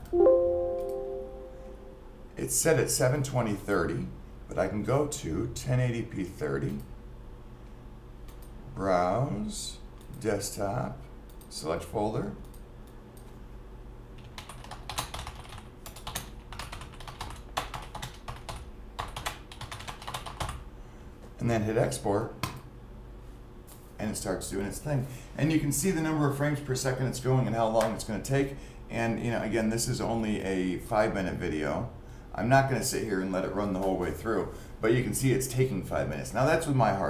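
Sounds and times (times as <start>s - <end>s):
bell-like tone ringing: 0.1s - 2.1s
typing on computer keyboard: 14.2s - 20.6s.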